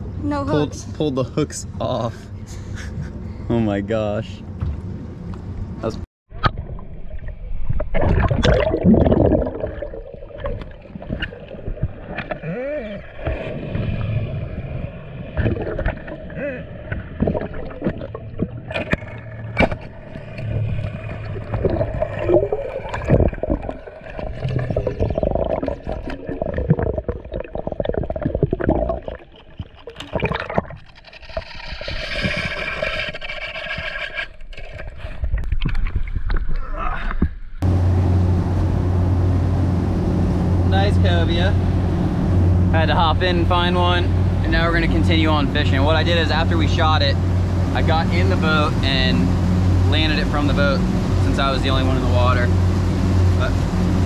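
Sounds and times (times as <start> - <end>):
outboard engines droning: 0.0 - 6.0, 18.1 - 23.0, 37.6 - 54.0
underwater gurgling and bubbles: 6.3 - 37.7.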